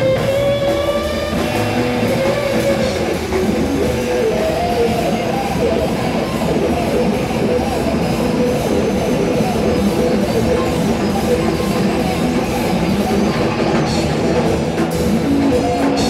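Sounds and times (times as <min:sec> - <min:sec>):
drum kit: 0:00.0 - 0:16.0
electric guitar: 0:00.0 - 0:16.0
synthesizer: 0:00.0 - 0:16.0.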